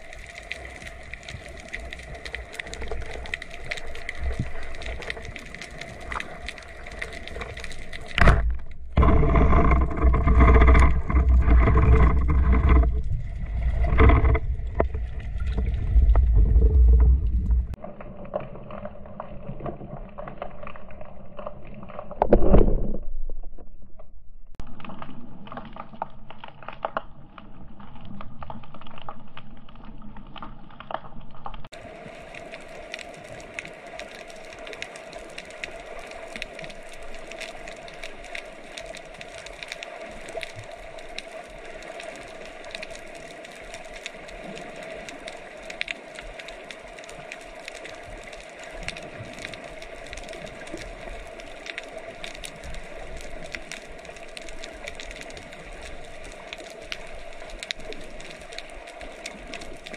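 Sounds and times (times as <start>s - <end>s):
low water rumble: 0.0s - 59.9s
underwater clicks and crackles: 0.0s - 59.9s.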